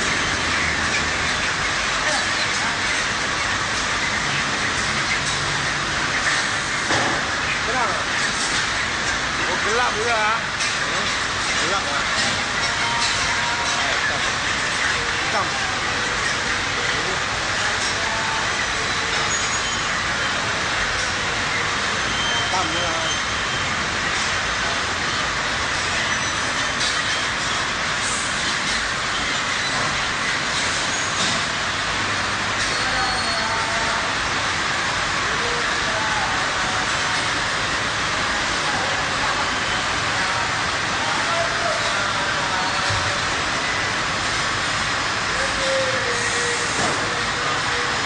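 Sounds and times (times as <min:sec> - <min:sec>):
many voices talking: 0:00.0 - 0:23.4, 0:32.6 - 0:48.0.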